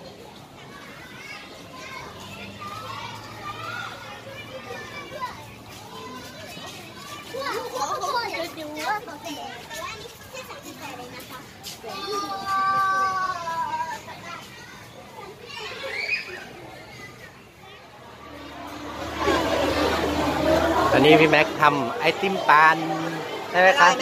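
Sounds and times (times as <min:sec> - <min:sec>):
children calling and chattering: 0:00.0 - 0:24.0.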